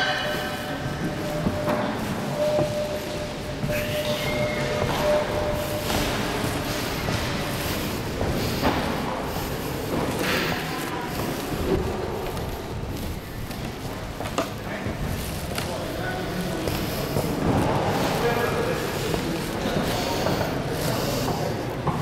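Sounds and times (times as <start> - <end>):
room hum: 0.0 - 22.0
people talking indistinctly: 14.5 - 22.0.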